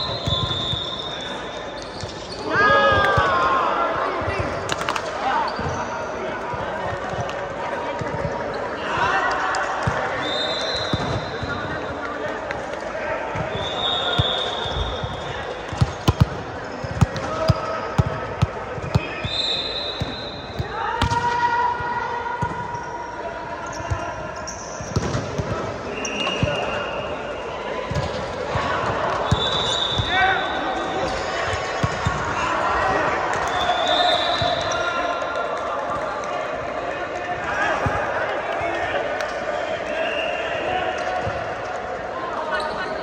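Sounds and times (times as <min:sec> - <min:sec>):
sneakers squeaking on floor: 0:00.0 - 0:03.2, 0:04.2 - 0:07.2, 0:09.9 - 0:11.9, 0:13.4 - 0:18.1, 0:18.7 - 0:21.2, 0:22.4 - 0:27.3, 0:27.9 - 0:35.1, 0:42.5 - 0:43.0
players calling: 0:00.0 - 0:43.0.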